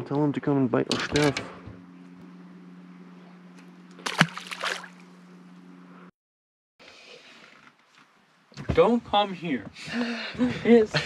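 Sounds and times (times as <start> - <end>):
trolling motor hum: 0.0 - 6.1
short splash: 4.0 - 5.0.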